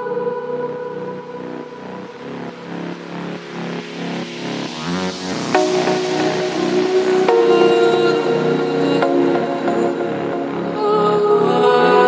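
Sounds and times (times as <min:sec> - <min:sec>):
noisy synth sweep: 0:00.0 - 0:11.9
pulsing synth: 0:00.0 - 0:12.0
sustained synth pads: 0:00.0 - 0:12.0
trance music: 0:00.0 - 0:12.0.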